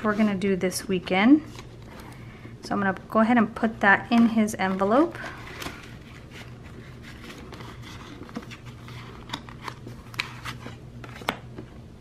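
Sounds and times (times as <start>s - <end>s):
soft rustling of paper and plastic: 4.2s - 11.8s.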